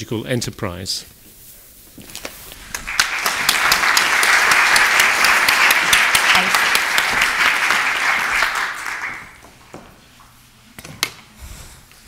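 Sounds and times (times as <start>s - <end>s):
audience applauding: 2.5s - 9.6s.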